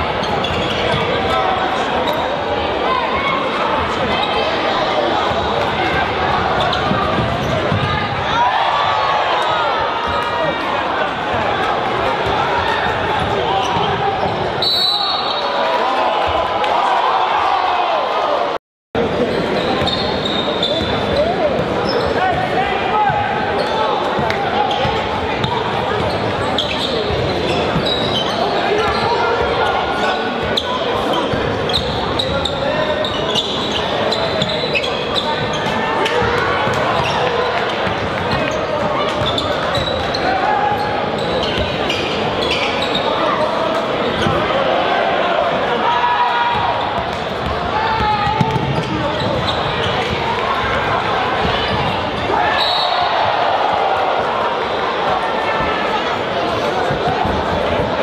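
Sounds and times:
hubbub of voices in a hall: 0.0 - 58.0.

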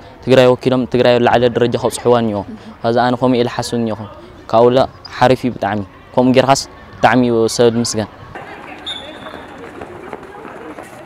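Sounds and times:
running footsteps: 8.4 - 11.0.

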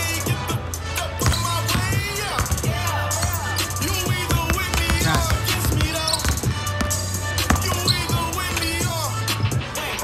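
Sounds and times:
music with vocals and bass beat: 0.0 - 10.0
basketballs bouncing on wooden floor: 1.2 - 8.8.

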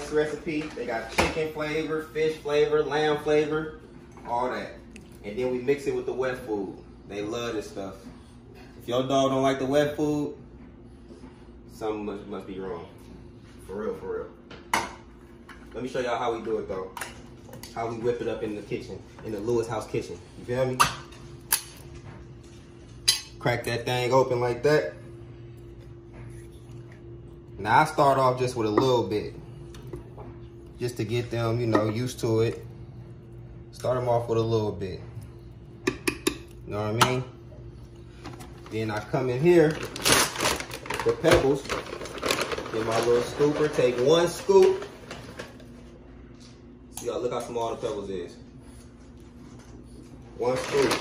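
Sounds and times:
low room hum: 0.0 - 51.0
kibble rustling and rattling: 39.6 - 45.7, 50.4 - 51.0.

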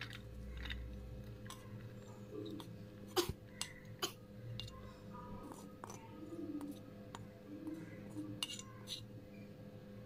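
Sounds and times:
metal spoon scraping a pan: 7.6 - 9.1.

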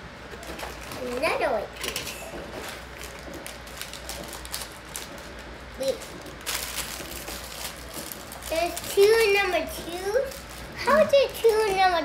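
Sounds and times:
plastic bag rustling: 0.4 - 12.0.

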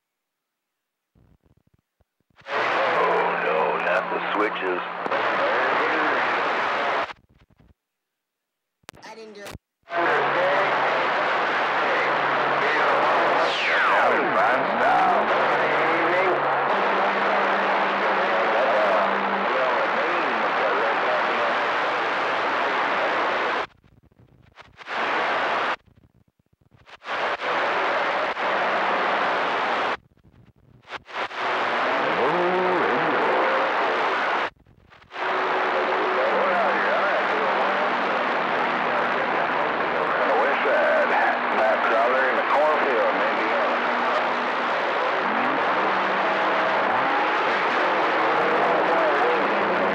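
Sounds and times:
radio static hiss: 1.2 - 7.8, 8.9 - 49.9
garbled radio voices: 2.4 - 7.0, 9.0 - 23.2, 31.1 - 34.4, 35.1 - 49.9.

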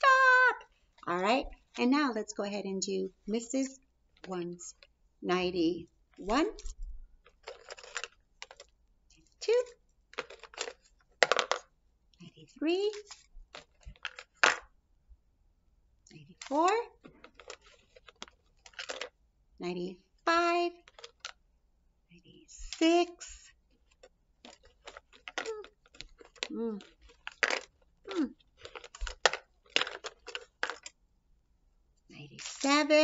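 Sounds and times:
wooden sticks clicking and clattering: 7.3 - 8.7, 10.1 - 11.6, 16.4 - 19.1, 23.9 - 27.8, 28.6 - 30.9.

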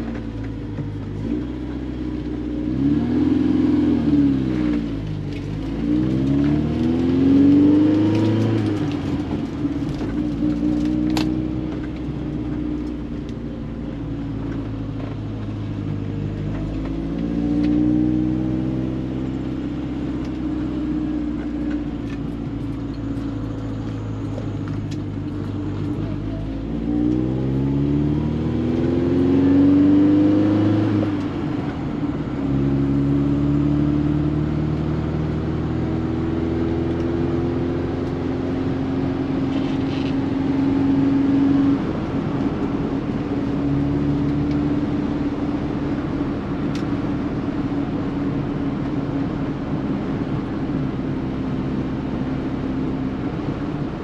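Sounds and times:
car engine heard from inside cabin: 0.0 - 54.0.

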